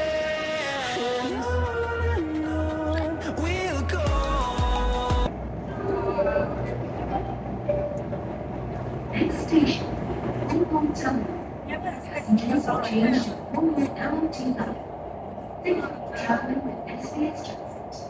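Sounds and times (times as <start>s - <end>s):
train rumbling through tunnel: 5.1s - 18.0s
voices: 8.8s - 18.0s.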